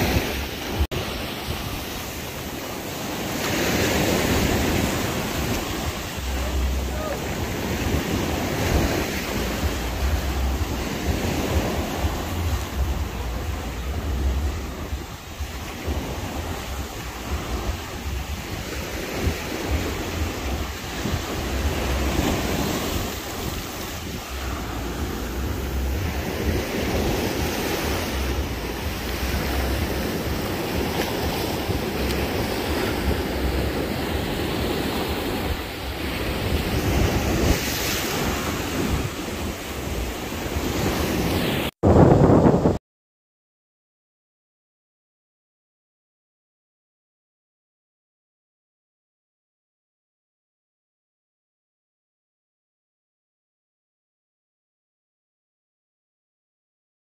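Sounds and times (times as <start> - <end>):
small surf breaking on shore: 0.0 - 42.8
wind rumbling on microphone: 0.0 - 42.8.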